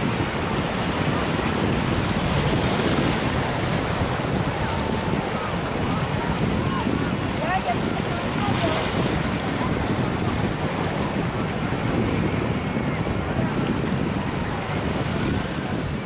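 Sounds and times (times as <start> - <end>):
waves breaking over rocks: 0.0 - 16.0
wind buffeting microphone: 0.0 - 16.0.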